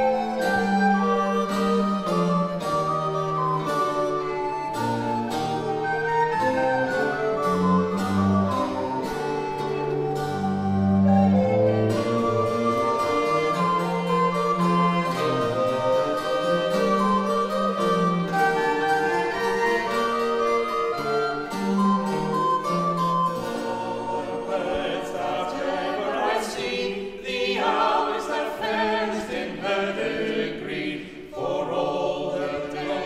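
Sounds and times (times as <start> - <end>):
early music consort playing: 0.0 - 33.0.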